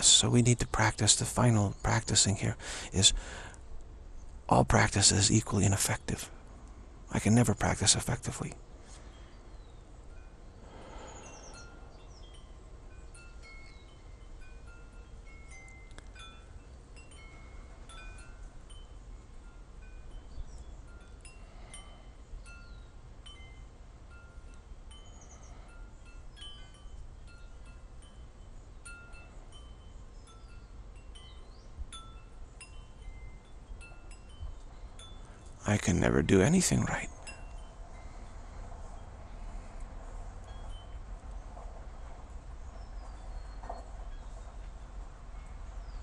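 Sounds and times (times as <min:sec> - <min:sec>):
wind chimes tinkling: 0:00.0 - 0:46.0.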